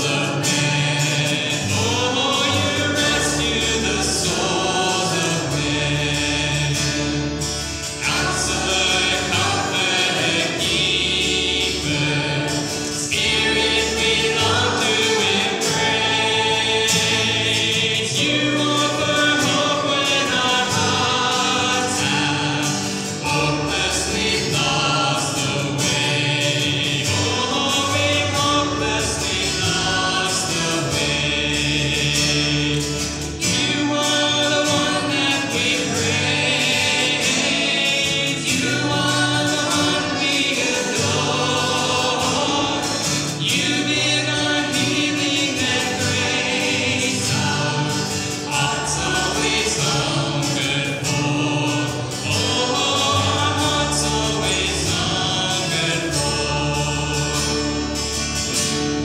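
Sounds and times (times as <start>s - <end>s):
acoustic guitars: 0.0s - 59.0s
group singing a hymn: 0.0s - 59.0s
upright bass: 0.0s - 59.0s.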